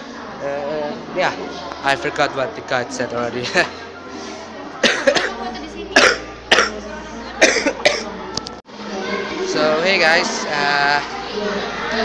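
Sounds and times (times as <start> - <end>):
person coughing into hand: 4.8 - 5.4, 6.0 - 6.8, 7.4 - 8.1.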